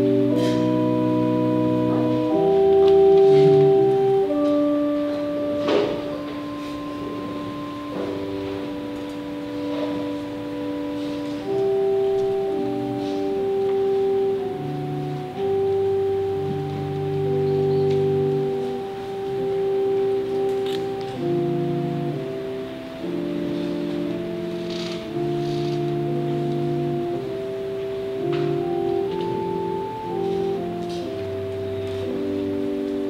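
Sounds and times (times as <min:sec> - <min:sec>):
organ playing sustained chords: 0:00.0 - 0:33.0.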